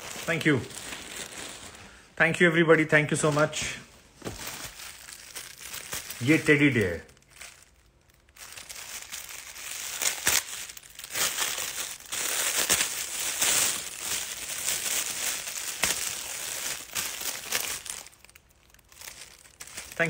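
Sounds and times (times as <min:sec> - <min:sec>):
wrapping paper crinkling: 0:00.0 - 0:02.0, 0:03.0 - 0:20.0.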